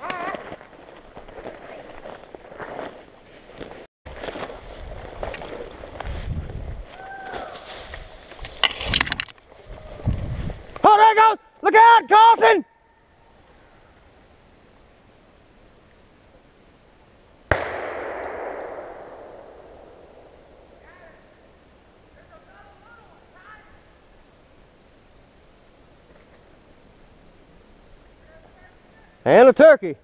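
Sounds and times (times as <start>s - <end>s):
gunshot echoing through woods: 17.5s - 20.9s.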